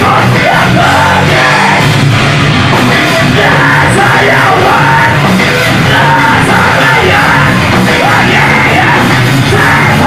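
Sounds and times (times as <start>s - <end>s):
shouted vocal: 0.0s - 1.9s, 3.2s - 10.0s
heavy metal band playing live: 0.0s - 10.0s.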